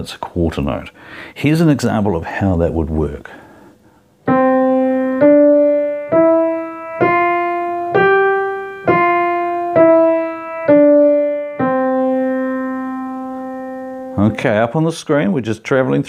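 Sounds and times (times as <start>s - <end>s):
piano single notes: 4.2s - 14.6s.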